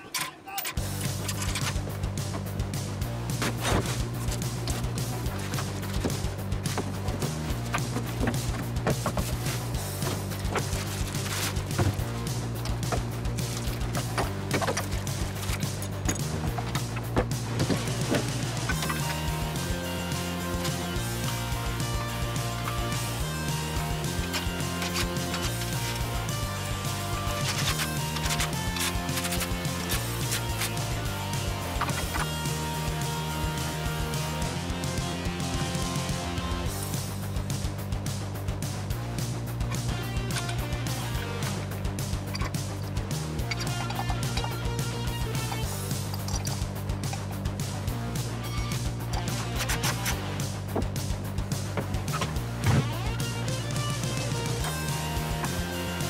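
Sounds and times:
music with sustained bass: 0.8s - 56.0s.

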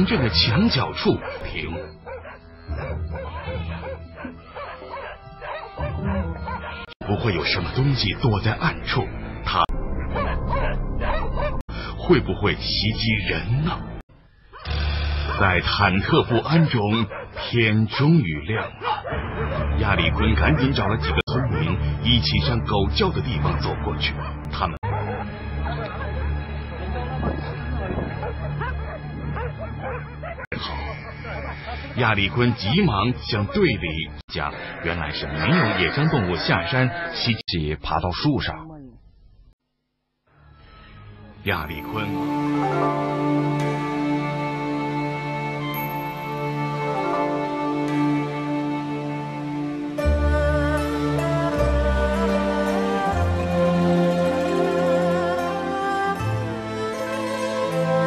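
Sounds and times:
dogs barking: 0.0s - 7.5s, 10.0s - 11.6s, 14.5s - 22.6s, 24.0s - 34.2s
background music: 0.0s - 34.2s, 40.3s - 58.0s.

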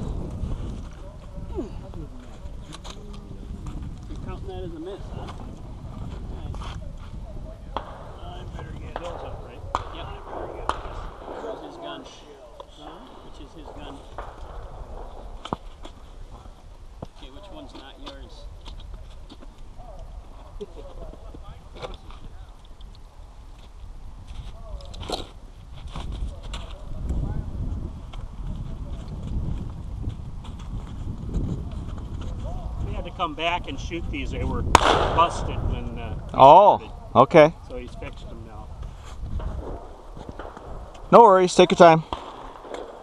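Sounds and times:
steady low rumble: 0.0s - 17.0s, 26.3s - 41.1s
wind buffeting microphone: 0.0s - 43.0s
people talking: 0.9s - 14.2s, 17.2s - 22.6s, 32.4s - 38.7s, 41.1s - 42.0s.

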